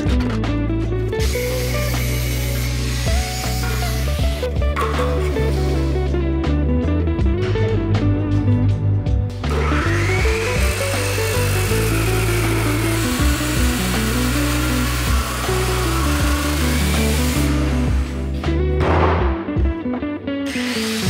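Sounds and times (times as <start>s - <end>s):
background music: 0.0s - 21.0s
chop saw grinding steel: 1.2s - 5.4s, 9.5s - 18.3s, 20.5s - 21.0s.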